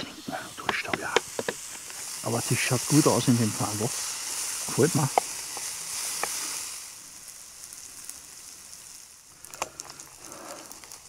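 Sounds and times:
bacon sizzling in a frying pan: 0.1s - 11.0s.

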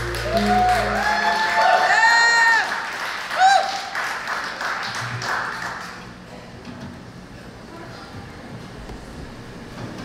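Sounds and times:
audience applause: 0.0s - 6.1s
person whooping: 0.1s - 3.9s.

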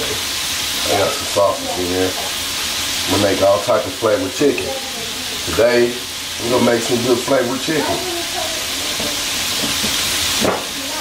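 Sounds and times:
chicken sizzling in hot oil: 0.0s - 11.0s.

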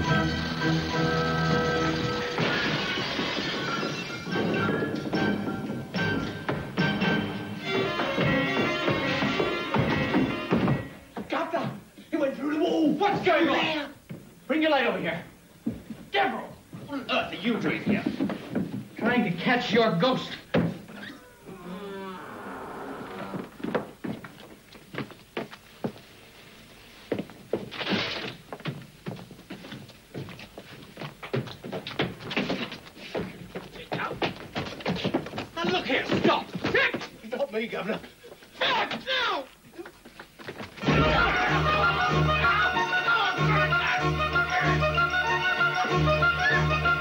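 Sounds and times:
chandelier crashing and glass shattering: 2.0s - 5.0s
long wavering cry: 21.1s - 23.4s.

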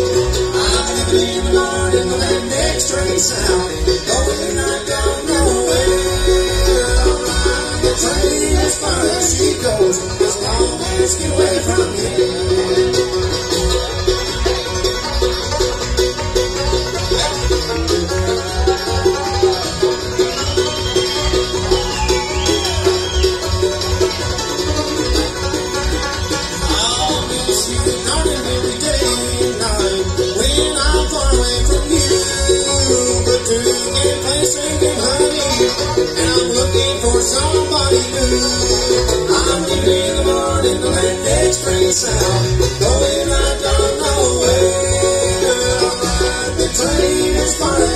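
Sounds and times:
banjo picking: 0.0s - 47.9s
mandolin: 0.0s - 47.9s
upright bass: 0.0s - 47.9s.

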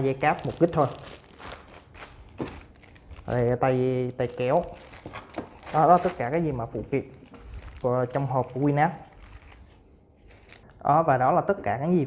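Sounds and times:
plastic bags crinkling: 0.1s - 10.7s.

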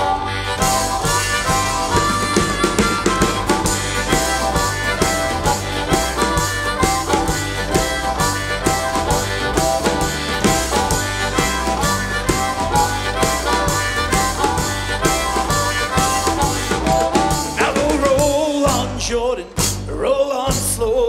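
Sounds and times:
bluesy harmonica solo: 0.0s - 19.8s
acoustic guitar: 0.0s - 21.0s
upright double bass: 0.0s - 21.0s.

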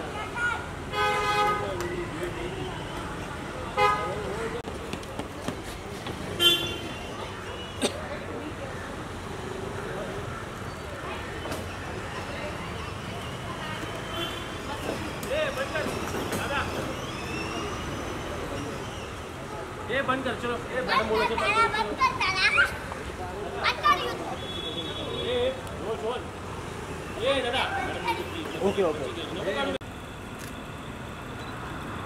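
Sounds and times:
people calling out and talking: 0.0s - 29.8s.

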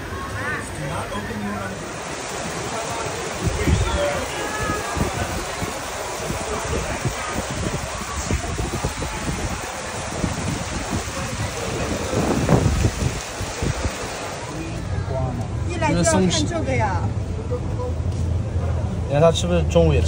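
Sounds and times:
water rushing down concrete channel: 0.0s - 20.0s.

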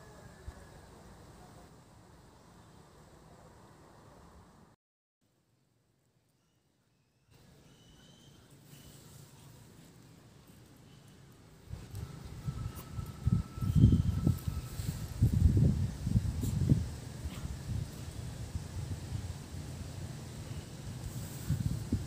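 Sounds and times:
wind buffeting microphone: 11.7s - 20.1s, 20.8s - 22.0s.

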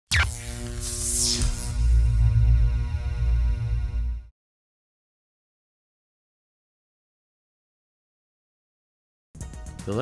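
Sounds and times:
electronic music with pulsing bass: 0.1s - 4.3s.

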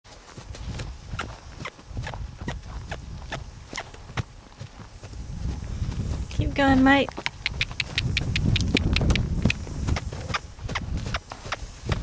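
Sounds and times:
footsteps crunching on dry ground: 0.1s - 12.0s.

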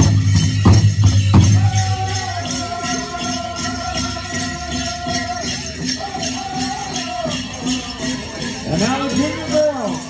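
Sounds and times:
bells jingling with steps: 0.0s - 10.0s
drum and singers: 0.0s - 10.0s.

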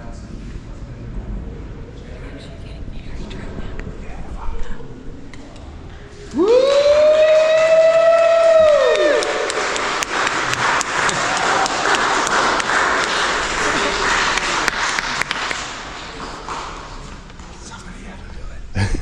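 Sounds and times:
crowd applauding and cheering: 6.3s - 17.2s.

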